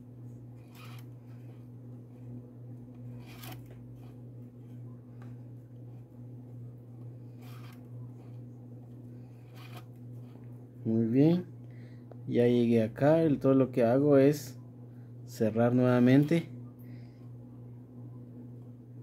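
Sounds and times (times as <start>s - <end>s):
steady low hum: 0.0s - 19.0s
cord rustling and scraping: 0.6s - 1.7s, 2.9s - 6.1s, 7.3s - 8.4s, 9.3s - 10.5s.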